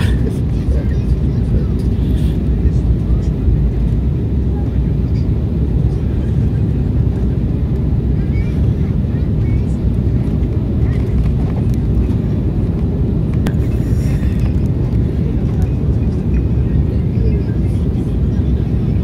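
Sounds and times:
airliner cabin noise: 0:00.0 - 0:19.0.

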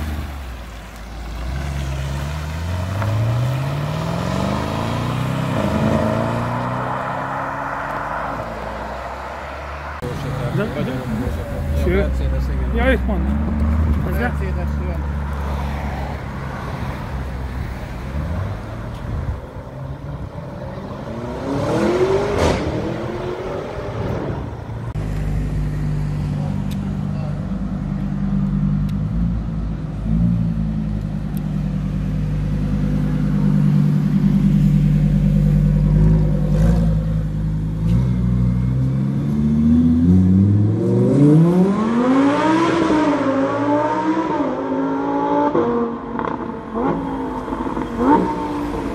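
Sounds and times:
another car engine revving: 0:01.3 - 0:10.0, 0:20.2 - 0:48.9
sports car engine revving: 0:01.4 - 0:09.2, 0:20.8 - 0:24.5.

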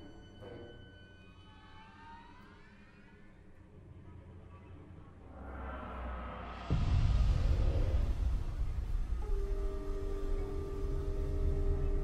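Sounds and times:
low rumble: 0:05.2 - 0:12.0.

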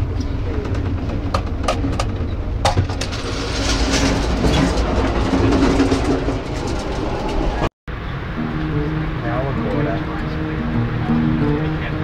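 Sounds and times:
rattling and clicks: 0:00.0 - 0:07.7
train wheels rumbling on rail: 0:00.0 - 0:07.7.

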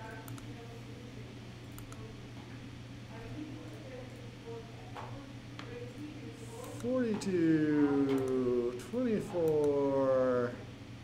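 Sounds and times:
steady low hum: 0:00.0 - 0:11.0
computer mouse clicks: 0:00.2 - 0:00.5, 0:01.7 - 0:02.0.

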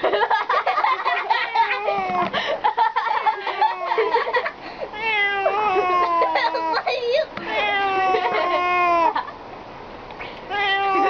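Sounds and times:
cat meowing: 0:05.0 - 0:06.8, 0:07.4 - 0:09.2, 0:10.5 - 0:11.0.

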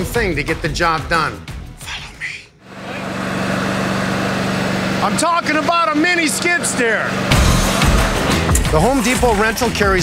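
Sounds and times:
small engine running steadily: 0:02.6 - 0:08.6.

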